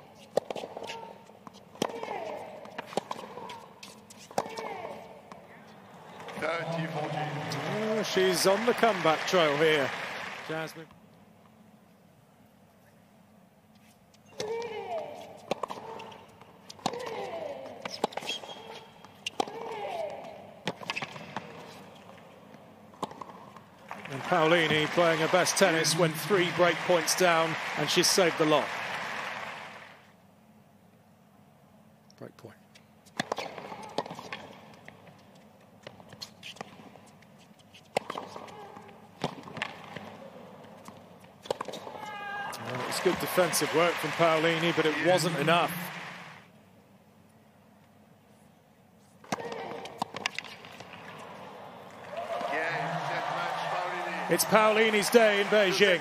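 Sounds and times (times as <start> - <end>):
racket striking tennis ball: 49.2 - 51.3.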